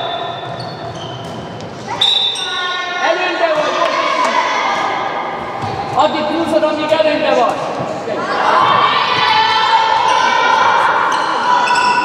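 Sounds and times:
girls shouting in echoing hall: 1.9s - 6.0s, 8.0s - 12.0s.

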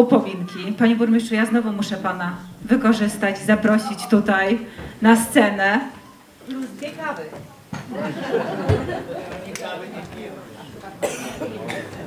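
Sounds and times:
people talking quietly: 0.0s - 12.0s
sharp cough: 11.0s - 12.0s.

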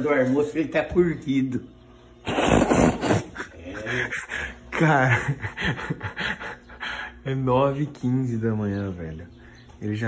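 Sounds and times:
man laughing breathily: 3.0s - 7.2s.

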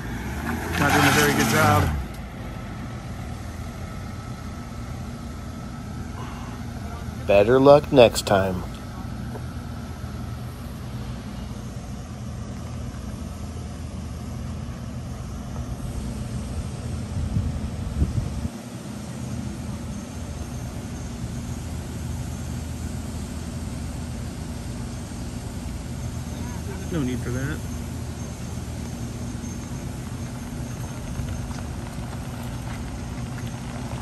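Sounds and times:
vehicle engine idling: 0.0s - 34.0s.

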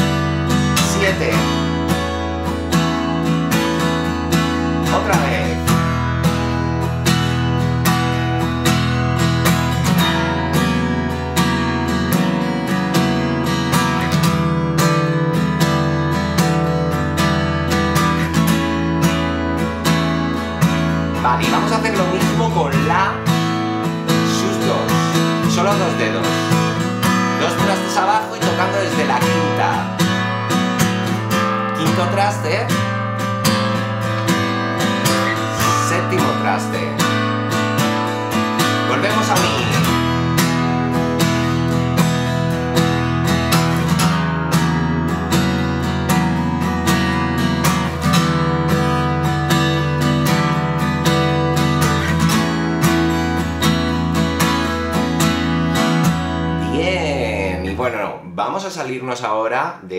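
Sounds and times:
acoustic guitar strumming chords: 0.0s - 58.6s.

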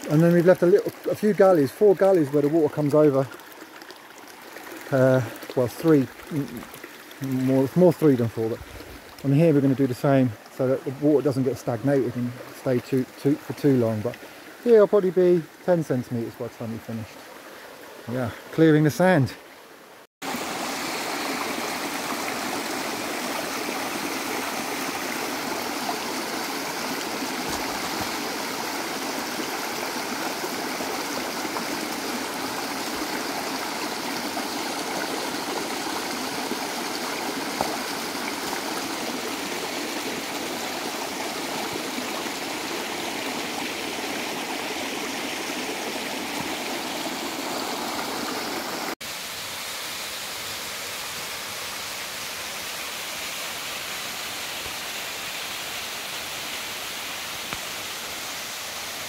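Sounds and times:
stream rushing over stones: 0.0s - 59.0s.

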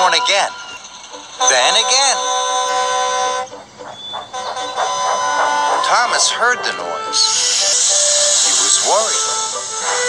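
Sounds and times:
background music: 0.0s - 10.0s
diesel engine horn blasts: 0.0s - 10.0s.

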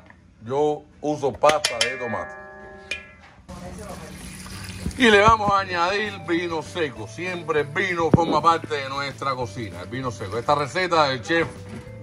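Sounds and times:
wine pouring into a pan: 3.8s - 5.2s.

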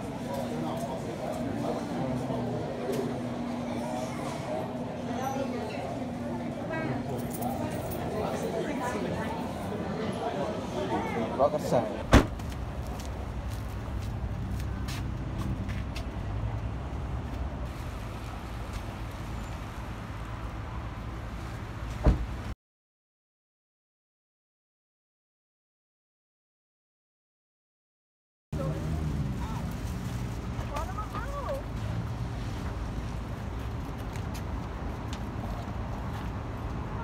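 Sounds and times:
motor vehicles rumbling: 0.0s - 22.6s, 28.6s - 37.0s.

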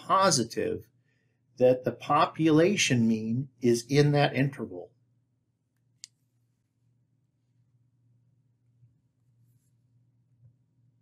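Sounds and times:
faint low hum: 0.0s - 11.0s
stylus scratching tablet screen: 9.2s - 9.9s.

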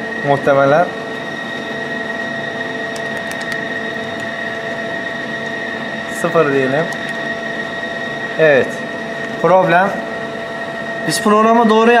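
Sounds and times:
machine hum with high whine: 0.0s - 12.0s
control panel key clicks: 2.9s - 3.6s.

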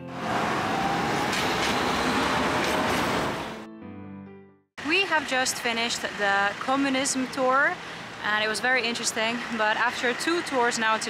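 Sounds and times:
faint tram whine: 0.0s - 3.6s
steel wheels rumbling on rails: 0.2s - 3.6s.

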